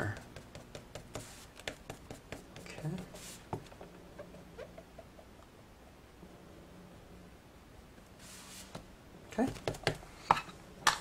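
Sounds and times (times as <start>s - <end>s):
ink dauber patting on cardstock: 0.0s - 3.8s.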